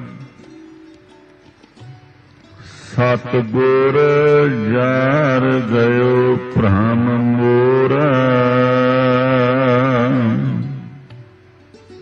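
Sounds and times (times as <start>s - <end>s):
person singing long held notes: 0.0s - 0.8s, 2.6s - 11.4s.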